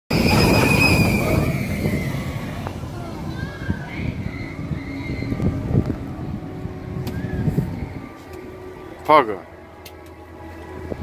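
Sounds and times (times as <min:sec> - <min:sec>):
rollercoaster train rumbling past: 0:00.1 - 0:08.8.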